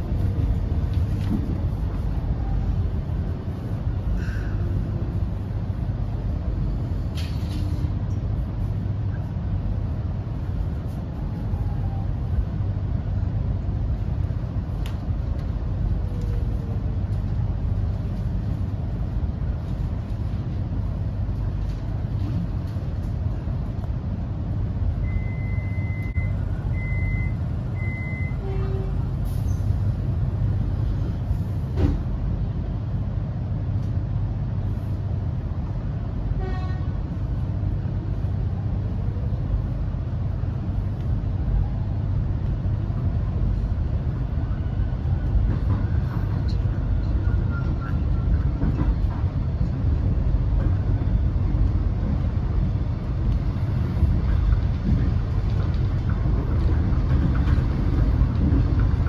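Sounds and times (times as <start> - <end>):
train wheels rumbling: 0.0 - 59.0
short high door warning beeps: 25.0 - 28.4.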